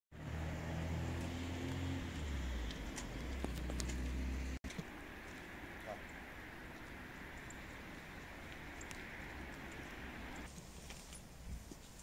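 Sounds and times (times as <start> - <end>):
engine humming steadily: 0.2 - 11.8.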